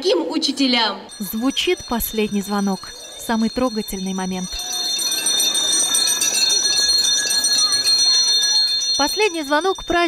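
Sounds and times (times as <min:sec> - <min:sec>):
handbell ringing rapidly: 0:01.1 - 0:10.0
crowd murmur: 0:04.5 - 0:09.0.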